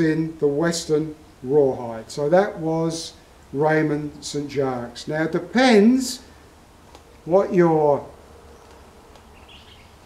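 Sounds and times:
faint high chirp: 8.4s - 10.0s.

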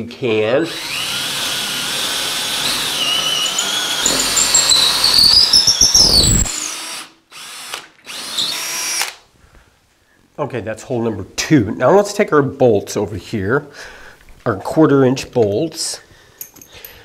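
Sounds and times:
cordless drill boring into wood: 0.6s - 9.2s.

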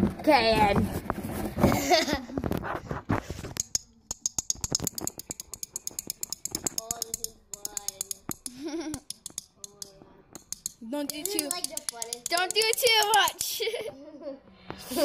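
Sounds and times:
plastic object clicking and rattling: 3.5s - 13.7s.

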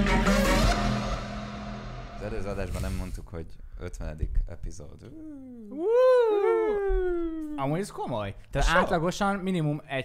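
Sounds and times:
man whooping: 5.2s - 7.8s.

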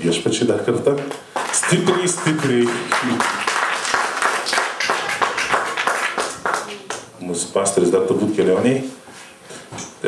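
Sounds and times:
crowd applauding: 0.9s - 7.1s.

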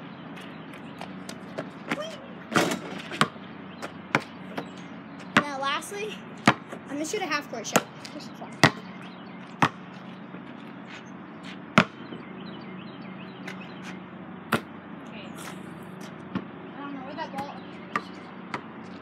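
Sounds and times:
basketball bouncing on hard ground: 0.4s - 12.3s, 13.4s - 14.8s, 15.4s - 16.6s, 17.2s - 19.0s.

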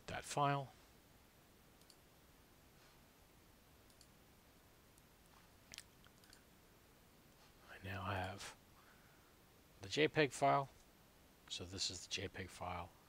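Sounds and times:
faint computer mouse clicks: 1.8s - 2.0s, 3.8s - 4.1s, 5.7s - 6.4s.

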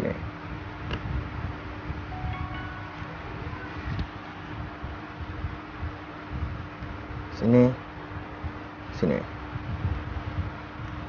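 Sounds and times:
low steady rumble: 1.2s - 7.3s
faint chime-like ringing tones: 2.1s - 4.0s.

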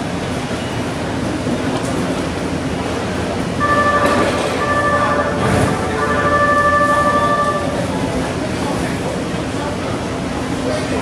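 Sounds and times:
train rumble: 0.0s - 11.0s.

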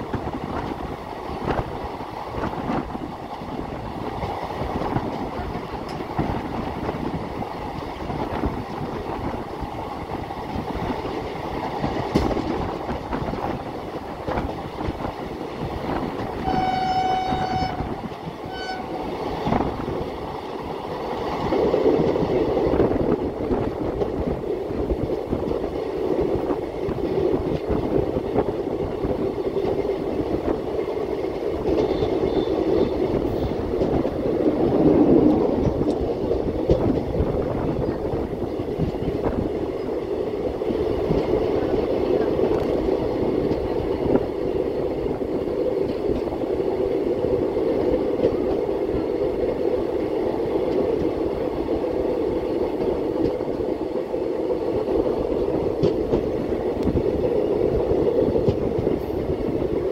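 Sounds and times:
train wheels rumbling on rails: 0.0s - 59.9s
train horn: 16.3s - 19.1s, 31.8s - 33.1s.

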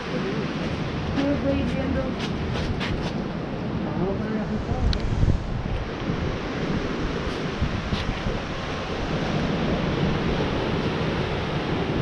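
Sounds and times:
ocean surf: 0.0s - 12.0s
wind buffeting microphone: 0.0s - 12.0s.

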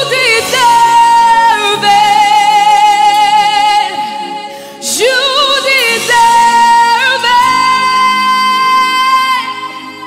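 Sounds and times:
woman singing gospel song: 0.0s - 10.0s.

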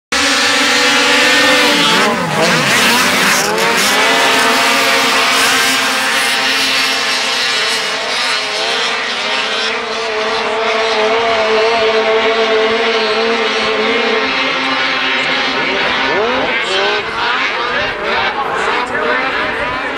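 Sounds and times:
snowmobile engines at full throttle: 0.1s - 19.9s.

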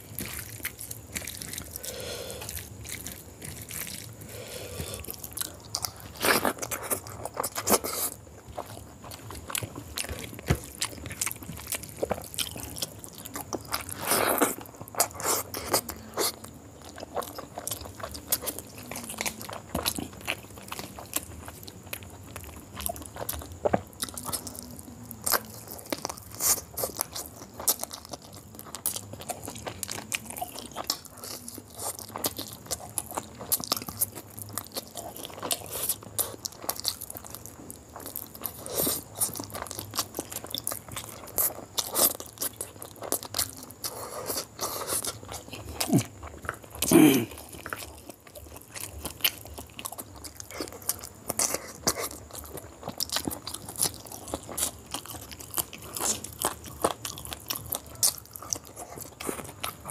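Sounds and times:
close chewing with mouth smacks: 0.0s - 59.9s.

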